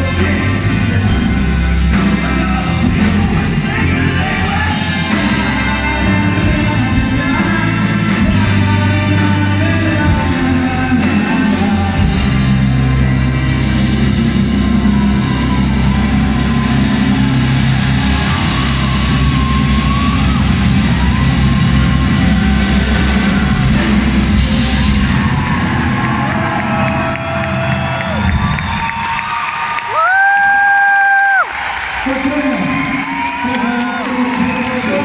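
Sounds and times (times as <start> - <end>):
rock band and string orchestra: 0.0 - 35.0
audience cheering and whooping: 11.6 - 35.0.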